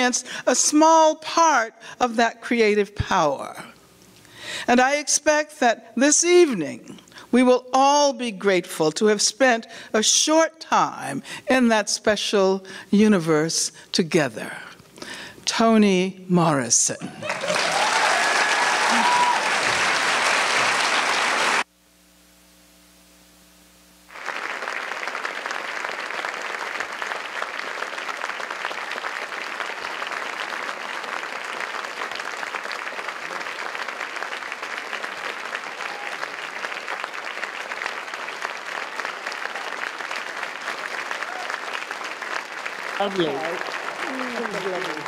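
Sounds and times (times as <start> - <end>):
faint steady hum: 0.0 - 39.5
audience applauding: 17.2 - 21.7, 24.1 - 45.0.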